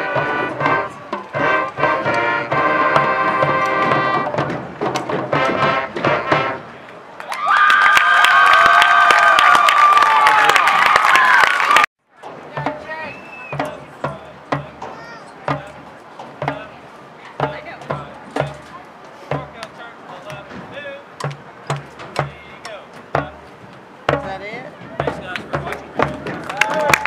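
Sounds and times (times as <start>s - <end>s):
bass drum beating: 12.5s - 18.7s, 19.3s - 27.0s.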